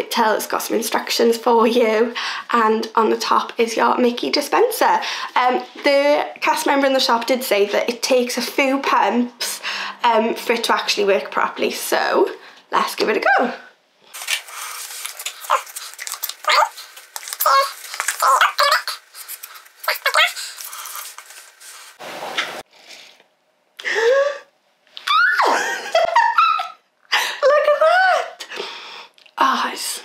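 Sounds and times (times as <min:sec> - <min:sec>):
foam soap pump squirting: 0:14.1 - 0:22.0.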